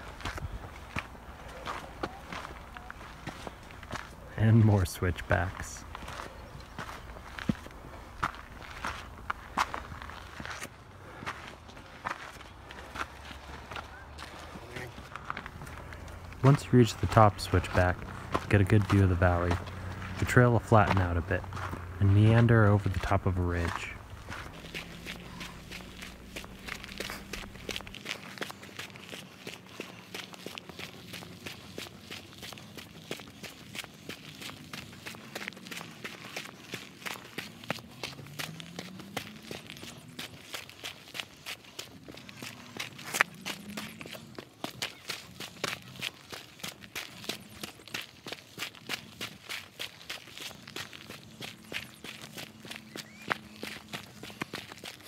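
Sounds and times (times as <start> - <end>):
footsteps on dirt and rock: 0.0 - 55.0.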